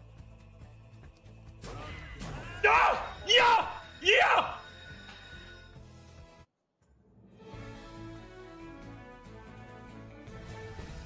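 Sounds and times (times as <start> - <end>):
person shouting: 2.5 - 4.6.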